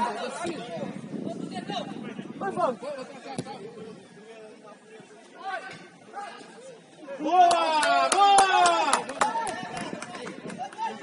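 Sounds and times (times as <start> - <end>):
open-air background noise: 0.0 - 11.0
distant shouts of footballers: 5.4 - 9.9.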